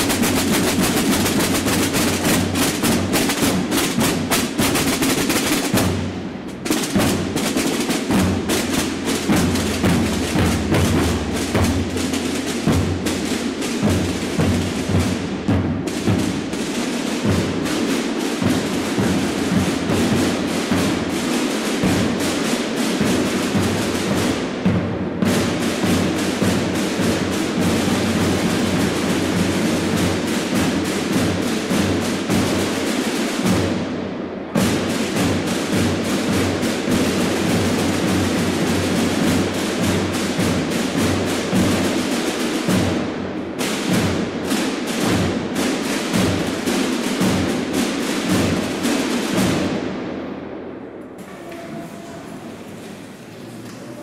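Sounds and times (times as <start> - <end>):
snare drums playing: 0.0 - 50.1, 51.1 - 54.0.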